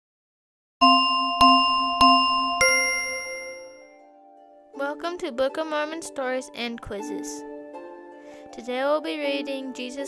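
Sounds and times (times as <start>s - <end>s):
bell-like chime jingle: 0.8s - 4.0s.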